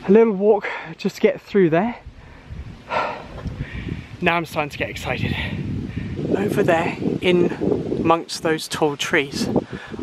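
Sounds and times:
wind rumble on microphone: 0:02.0 - 0:10.0
puff of breath: 0:02.2 - 0:04.1.

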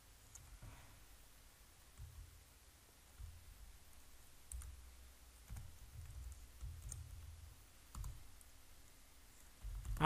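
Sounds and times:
computer keyboard keystrokes: 0:04.5 - 0:04.8, 0:05.4 - 0:08.5, 0:09.4 - 0:10.0.

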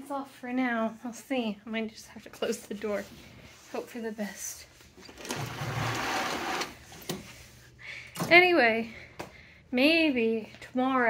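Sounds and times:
curtains sliding along track: 0:05.1 - 0:06.8.

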